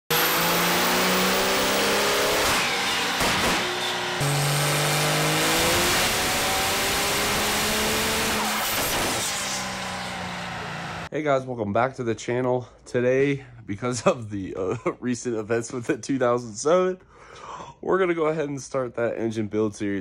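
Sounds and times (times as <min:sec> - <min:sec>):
high turbo whistle: 0:08.4 - 0:11.1
diesel engine under load: 0:09.2 - 0:11.1.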